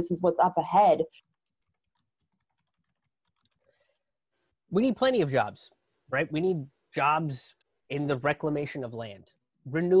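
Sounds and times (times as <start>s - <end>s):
woman speaking: 0.0s - 1.2s.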